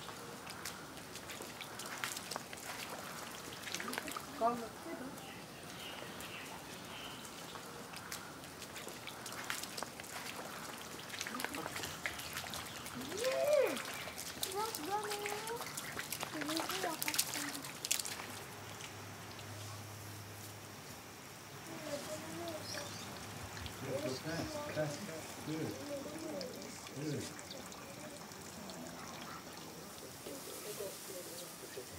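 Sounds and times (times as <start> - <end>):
splashing through muddy puddle: 0.0 - 5.2, 6.0 - 20.5
children calling out: 13.0 - 15.8.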